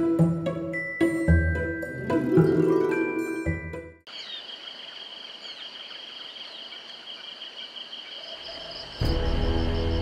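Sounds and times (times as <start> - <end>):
bird chirps: 4.1 - 9.0
insect chorus trilling: 4.1 - 10.0.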